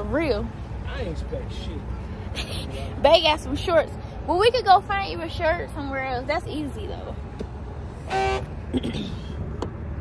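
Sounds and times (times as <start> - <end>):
low rumble of traffic: 0.0 - 10.0
short car horn beep: 8.0 - 8.6.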